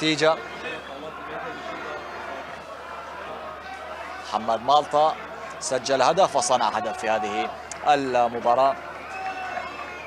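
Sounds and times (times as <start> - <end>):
murmur of distant voices: 0.0 - 10.0
players and crowd shouting: 0.0 - 10.0.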